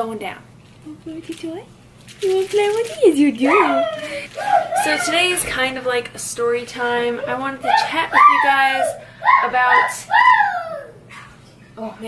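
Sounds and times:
young child squealing: 3.5 - 5.4, 7.6 - 11.1.

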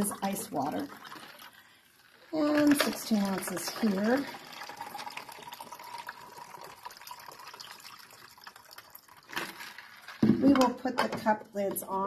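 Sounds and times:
water pouring into plastic cup: 0.0 - 10.6.

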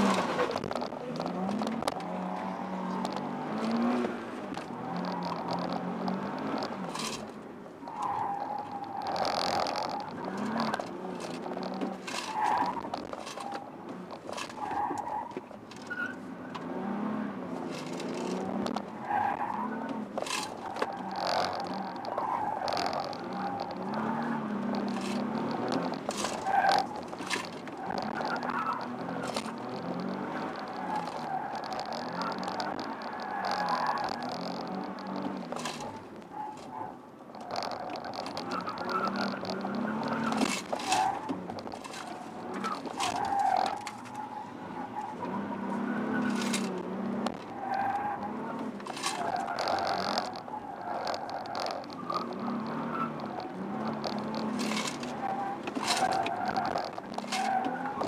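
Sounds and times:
car engine revving: 0.0 - 58.0
tyres squealing: 0.0 - 58.0.

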